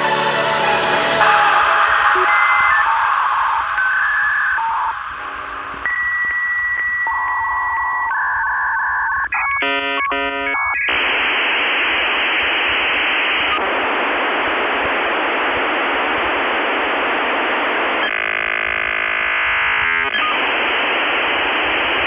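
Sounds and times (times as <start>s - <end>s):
loud modem data hiss: 0.6s - 22.0s
dial-up modem handshake tones: 1.2s - 22.0s
faint regular clicks: 13.3s - 18.3s.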